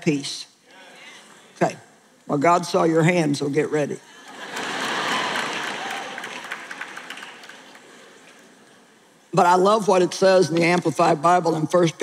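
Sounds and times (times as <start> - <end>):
audience applauding: 4.3 - 8.6.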